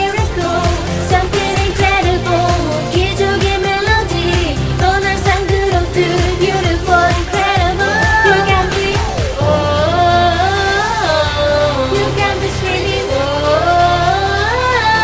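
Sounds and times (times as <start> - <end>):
dance-pop song with vocals: 0.0 - 15.0.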